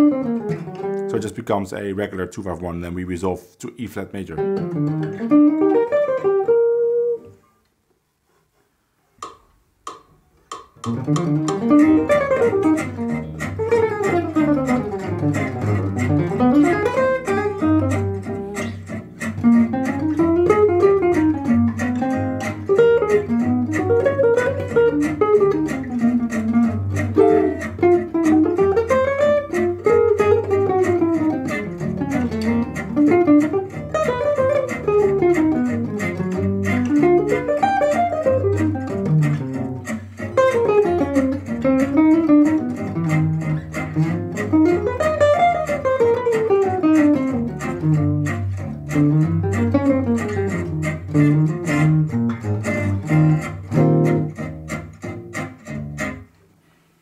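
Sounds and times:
jazz guitar playing fast lines: 0:00.0 - 0:07.4, 0:10.8 - 0:56.4.

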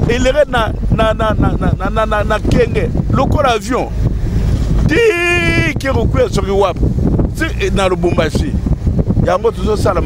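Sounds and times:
person talking: 0:00.0 - 0:04.0, 0:04.8 - 0:06.8, 0:07.4 - 0:08.6
car driving rumble: 0:00.0 - 0:10.0
wind buffeting microphone: 0:00.0 - 0:10.0.

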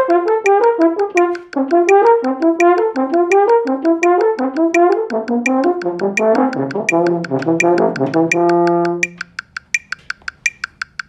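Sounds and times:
metronome ticking: 0:00.0 - 0:11.0.

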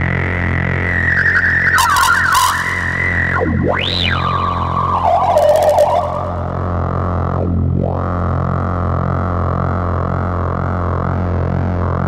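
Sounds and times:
buzzy synthesizer drone: 0:00.0 - 0:12.0.

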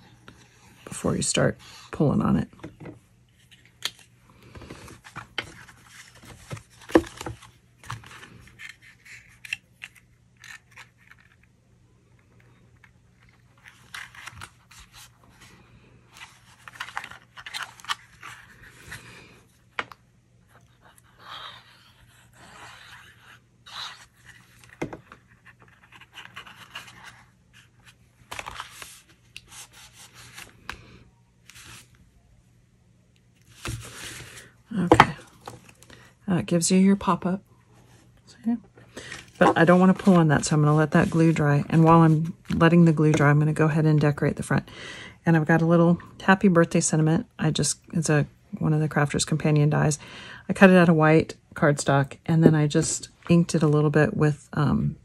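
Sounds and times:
faint electrical hum: 0:00.0 - 0:55.0
paper rustling and scraping: 0:21.0 - 0:30.7, 0:33.4 - 0:35.7, 0:39.0 - 0:42.6.

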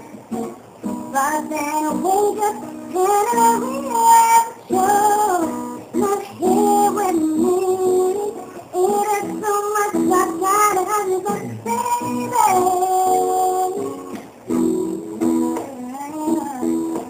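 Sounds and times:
woman singing pop ballad: 0:00.9 - 0:17.0.

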